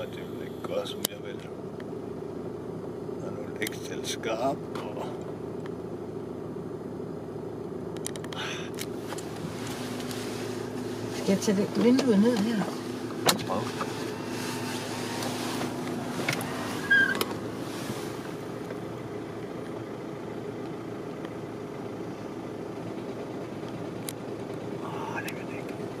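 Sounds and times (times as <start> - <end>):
car engine idling: 0.0 - 26.0.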